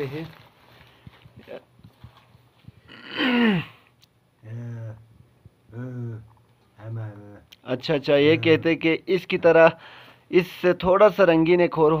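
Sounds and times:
newspaper rustling: 0:00.0 - 0:02.7.

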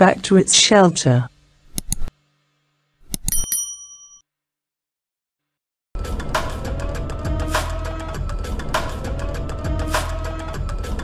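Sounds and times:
mouse clicks: 0:01.7 - 0:02.1, 0:03.1 - 0:03.4
bright bell ding: 0:03.2 - 0:04.2.

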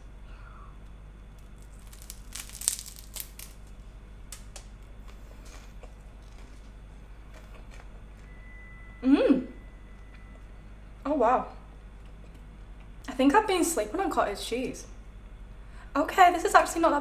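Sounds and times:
rice cake crunching: 0:01.2 - 0:07.9.

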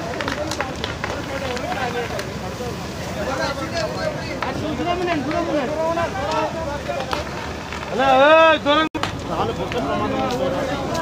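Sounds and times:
fire hose spraying water: 0:00.0 - 0:11.0
large fire crackling: 0:00.0 - 0:11.0
people's voices: 0:00.0 - 0:11.0.

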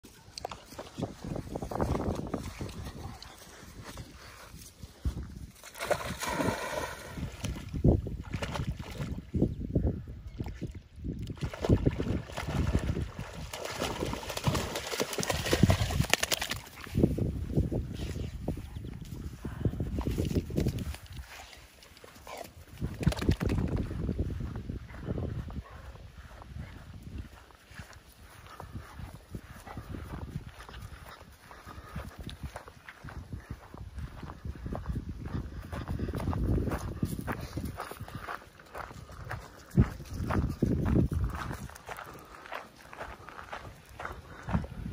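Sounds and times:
dog splashing in water: 0:05.6 - 0:09.2, 0:11.3 - 0:16.9.

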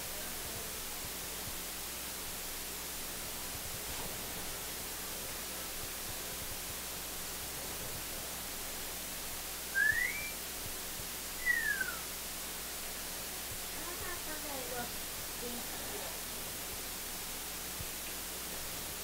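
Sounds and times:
steady hiss: 0:00.0 - 0:19.0
short whistled notes: 0:09.7 - 0:10.4, 0:11.4 - 0:12.1.

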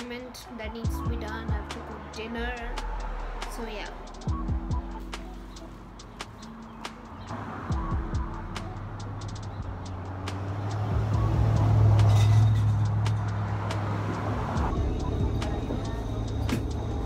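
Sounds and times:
heavy vehicle engine rumble: 0:00.0 - 0:17.0
traffic noise: 0:00.0 - 0:17.0.

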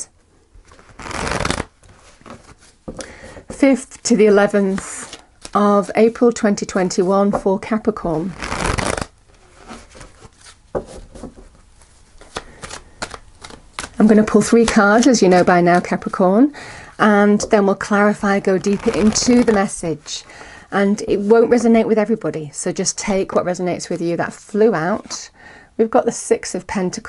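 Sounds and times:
cards being shuffled: 0:00.6 - 0:03.1, 0:08.2 - 0:16.2, 0:18.6 - 0:19.7.

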